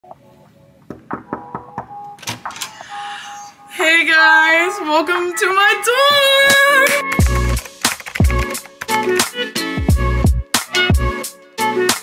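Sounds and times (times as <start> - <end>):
music playing: 1.2 - 12.0.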